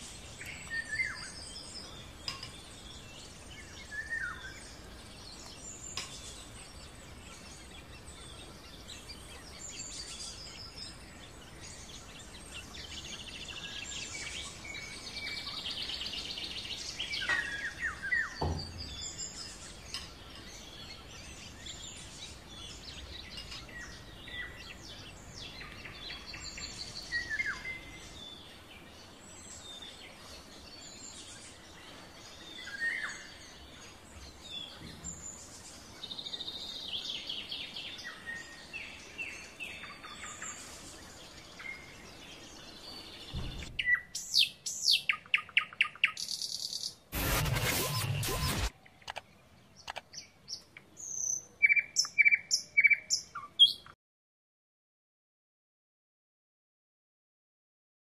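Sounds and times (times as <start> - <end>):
faint background hiss: 0.0 - 46.8
birds chirping and singing: 0.0 - 49.0, 49.8 - 54.0
loud noisy burst: 47.2 - 48.7.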